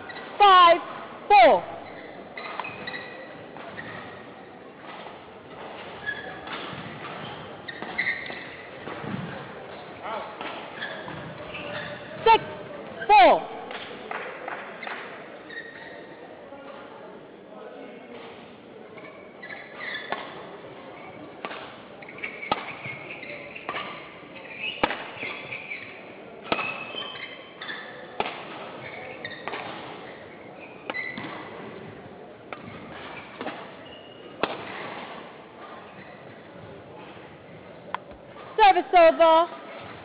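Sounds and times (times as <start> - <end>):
court shoes squeaking: 0.0 - 17.0, 18.0 - 40.0
rackets hitting shuttlecock: 13.4 - 15.1, 21.4 - 36.4.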